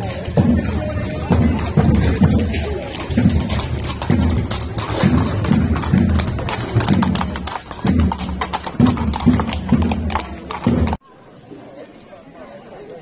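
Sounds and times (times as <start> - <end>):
drum beating steadily: 0.0 - 11.0.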